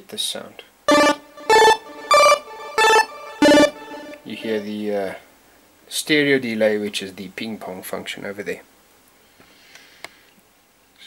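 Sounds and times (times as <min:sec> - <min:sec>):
arpeggiated chiptune synth notes: 0:00.9 - 0:04.8.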